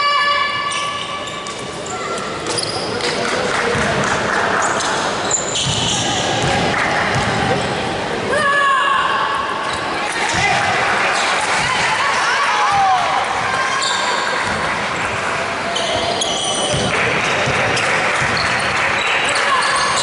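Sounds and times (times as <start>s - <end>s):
voices echoing in a hall: 0.0s - 20.0s.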